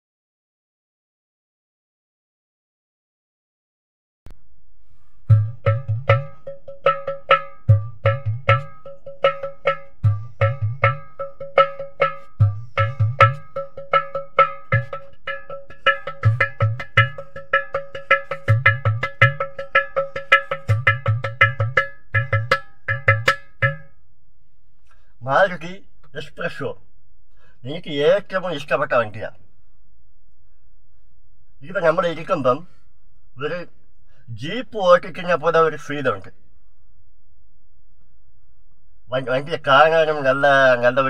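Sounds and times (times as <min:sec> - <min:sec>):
clay pot drum played by hand: 0:05.3 - 0:24.0.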